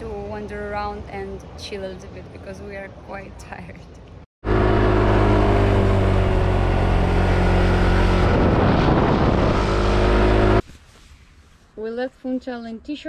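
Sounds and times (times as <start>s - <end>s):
scooter engine running: 4.4s - 10.6s
wind rushing over microphone: 5.0s - 10.6s.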